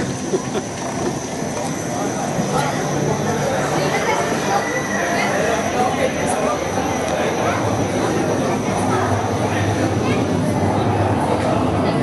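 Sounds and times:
people's voices: 0.0s - 12.0s
roller coaster wheel rumble: 0.0s - 12.0s.

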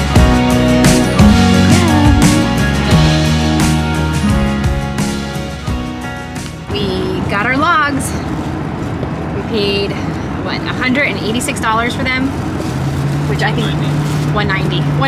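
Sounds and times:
road and engine noise: 0.0s - 15.0s
woman talking: 6.7s - 8.2s, 9.4s - 12.3s, 13.3s - 15.0s.

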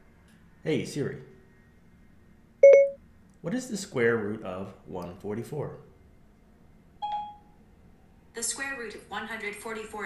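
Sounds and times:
short electronic chime: 2.6s - 3.0s.

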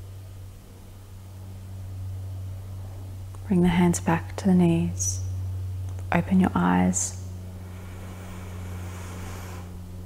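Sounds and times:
steady low hum: 0.0s - 10.0s
faint hiss: 7.3s - 10.0s.

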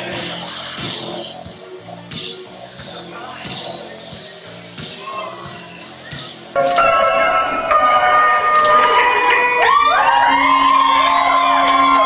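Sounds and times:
audience whooping and cheering: 8.5s - 12.0s.

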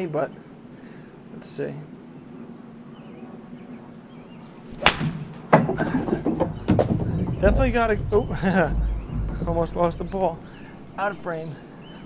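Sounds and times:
golf club striking ball: 4.7s - 7.6s
knock and thuds: 5.0s - 10.8s.

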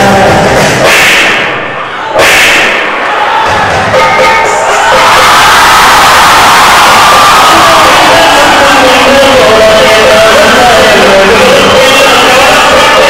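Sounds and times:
audience cheering and shouting: 0.0s - 13.0s
loud dance music over pa: 0.0s - 13.0s.

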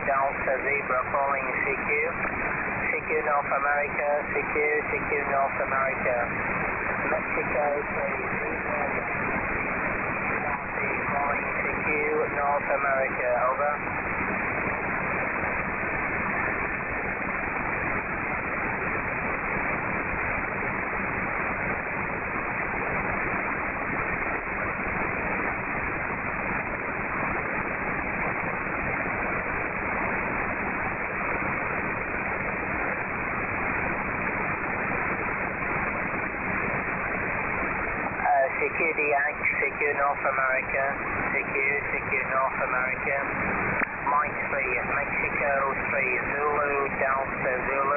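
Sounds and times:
voice over radio: 0.0s - 2.2s, 2.8s - 6.3s, 7.0s - 9.1s, 10.4s - 13.8s, 38.2s - 43.3s, 43.9s - 47.9s
faint low hum: 0.0s - 47.9s
radio static hiss: 0.0s - 47.9s.

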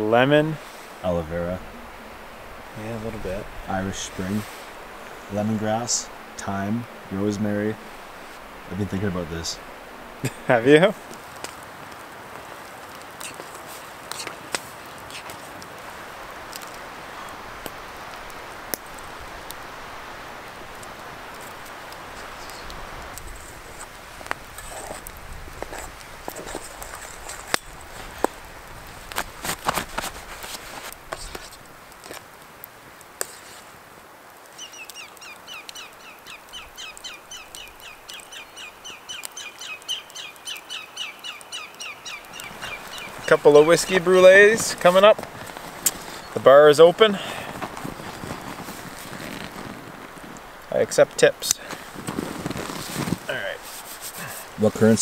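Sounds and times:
campfire crackling and popping: 0.0s - 55.0s
bird calling: 34.5s - 49.6s.

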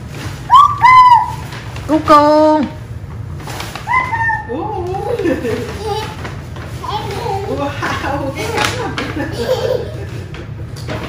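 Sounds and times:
child squealing: 0.5s - 1.4s, 3.9s - 4.6s.

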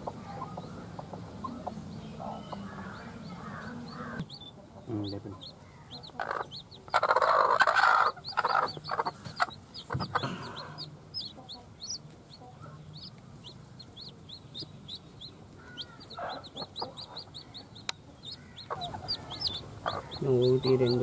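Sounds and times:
hen clucking low: 0.0s - 12.8s, 15.6s - 21.0s
chicks peeping: 0.0s - 21.0s.

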